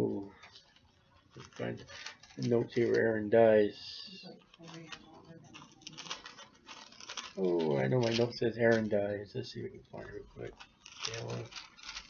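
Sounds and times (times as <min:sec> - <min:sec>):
handling rustles and clicks: 0:00.2 - 0:03.1, 0:04.2 - 0:09.0, 0:09.8 - 0:12.0.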